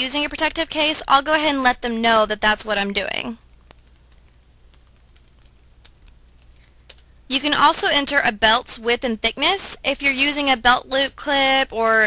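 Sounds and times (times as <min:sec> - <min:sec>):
keyboard typing clicks: 0:03.4 - 0:07.0.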